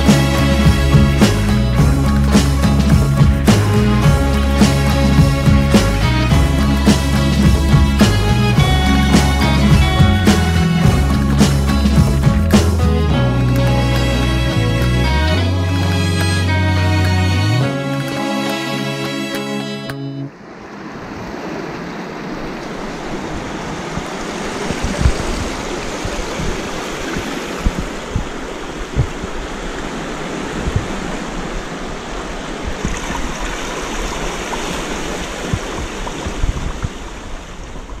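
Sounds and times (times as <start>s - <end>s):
short low thumps: 0.0s - 16.6s, 27.2s - 29.3s
sea water lapping against rocks: 20.4s - 38.0s.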